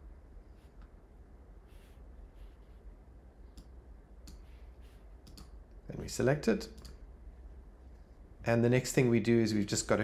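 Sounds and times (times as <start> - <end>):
faint computer mouse clicks: 5.2 - 5.6.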